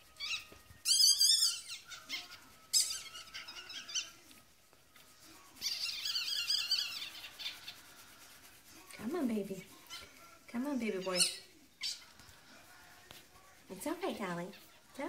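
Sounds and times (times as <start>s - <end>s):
puppy squealing: 0.1s - 4.2s, 11.1s - 12.1s
towel rubbing: 5.0s - 11.4s.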